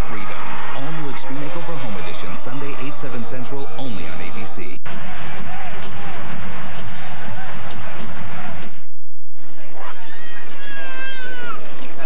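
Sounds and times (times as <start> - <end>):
baby crying: 9.8 - 11.8.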